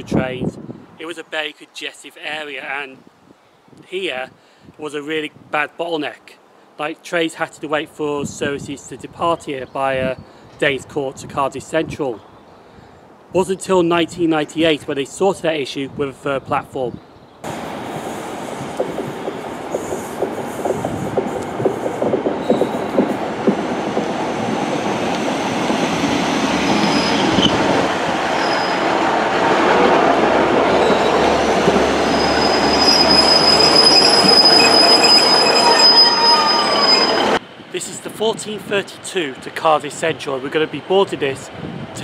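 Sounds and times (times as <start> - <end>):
diesel train rumbling: 17.4 - 38.2
high squeal of train brakes: 22.4 - 23.0, 26.7 - 27.6, 28.4 - 28.9, 30.7 - 37.4.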